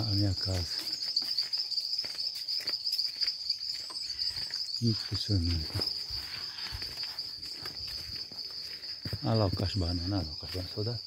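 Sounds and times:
high-pitched insect chorus: 0:00.0 - 0:11.0.

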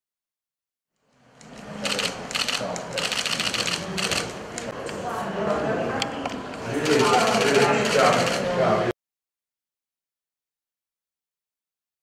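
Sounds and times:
people chattering: 0:01.2 - 0:09.0
camera shutters clicking: 0:01.4 - 0:04.7, 0:06.8 - 0:08.4.

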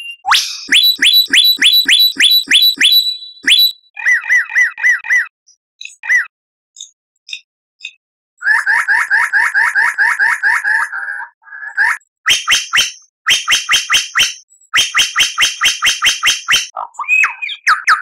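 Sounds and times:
bird whistled song: 0:00.0 - 0:06.3, 0:11.7 - 0:18.0.

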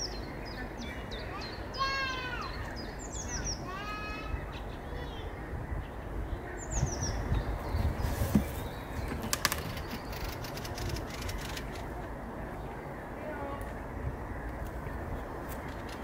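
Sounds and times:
songbird singing: 0:00.0 - 0:16.0
sharp clicks: 0:09.2 - 0:11.9.

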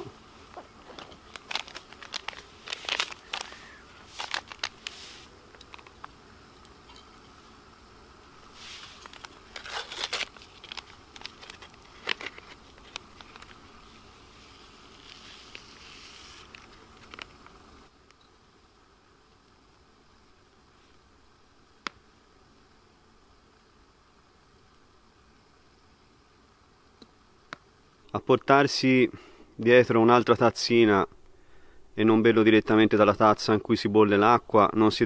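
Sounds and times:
faint steady hiss: 0:00.0 - 0:35.0.

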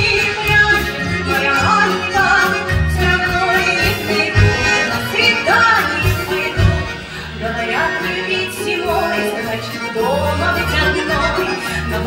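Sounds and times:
button accordions: 0:00.0 - 0:12.0
woman singing: 0:00.0 - 0:12.0
drum kit beat: 0:03.0 - 0:07.0.

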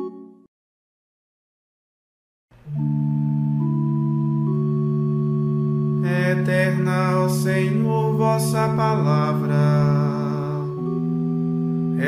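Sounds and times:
held accompaniment chord: 0:02.6 - 0:12.0
solo voice chanting: 0:06.0 - 0:11.0.

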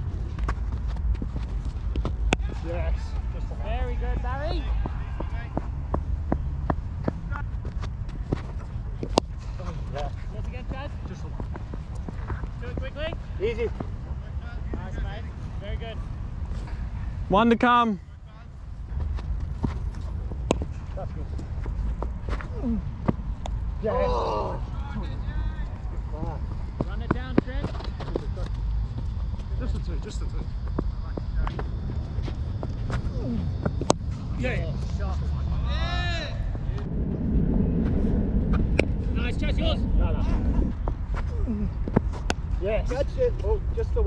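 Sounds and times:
steady low rumble: 0:00.0 - 0:44.0
players shouting calls: 0:02.2 - 0:06.1, 0:23.8 - 0:26.4.

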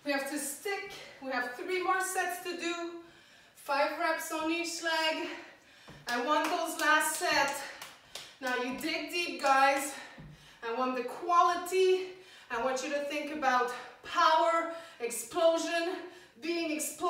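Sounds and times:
woman talking: 0:00.0 - 0:03.0, 0:03.6 - 0:05.4, 0:06.1 - 0:07.8, 0:08.4 - 0:17.0.

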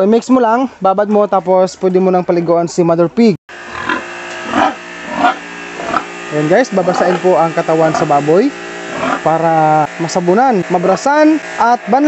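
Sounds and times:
steady hum: 0:03.5 - 0:12.0
pig grunting: 0:03.7 - 0:06.1, 0:08.9 - 0:09.3
water spraying from hose nozzle: 0:04.4 - 0:12.0.

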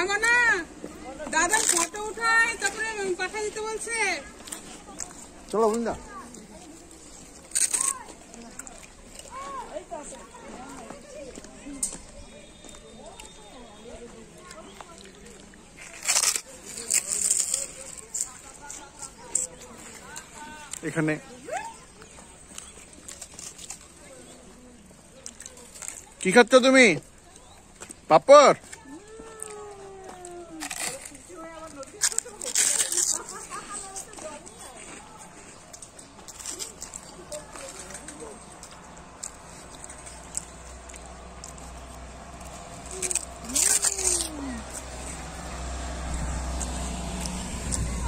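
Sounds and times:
distant people talking: 0:00.0 - 0:48.0
vehicle engine rumbling: 0:28.7 - 0:48.0.

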